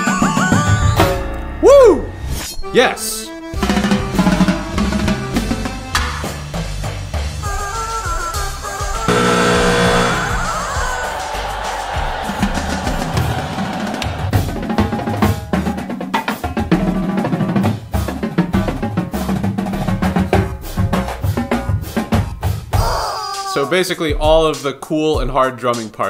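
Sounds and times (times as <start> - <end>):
falling pitched tone: 9.1 - 10.7.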